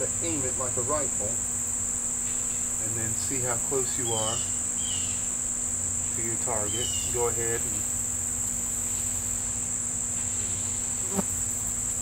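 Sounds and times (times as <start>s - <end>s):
insect chorus drone: 0.0s - 12.0s.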